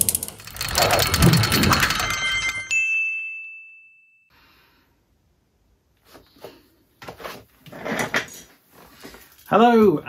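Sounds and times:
fast ratchet-like clicks: 0.0s - 2.6s.

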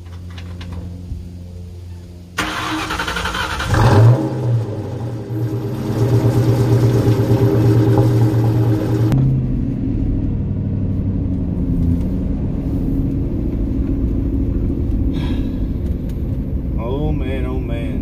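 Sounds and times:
car engine revving: 2.4s - 10.5s.

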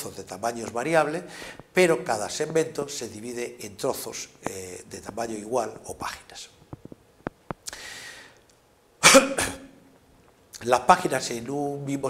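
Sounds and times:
man inhaling: 1.3s - 1.7s, 7.6s - 8.4s
man coughing: 9.0s - 9.8s.

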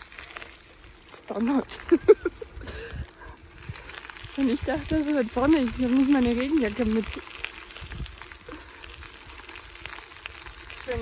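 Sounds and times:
bicycle tyres crackling on dirt: 0.0s - 11.0s
wind on microphone: 1.9s - 9.1s.

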